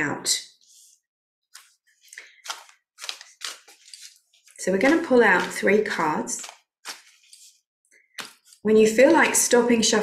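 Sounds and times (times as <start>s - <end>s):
cards being shuffled: 1.5s - 9.4s.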